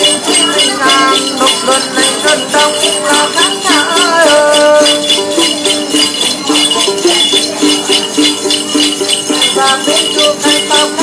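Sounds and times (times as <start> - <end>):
shaken bell cluster: 0.0 - 11.0.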